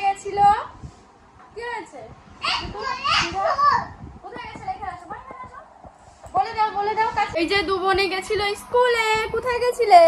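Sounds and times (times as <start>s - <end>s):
small children talking: 1.6s - 5.7s.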